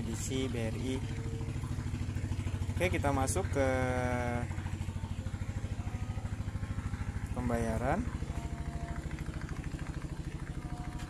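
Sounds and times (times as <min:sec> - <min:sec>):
small engine idling: 0:00.0 - 0:11.0.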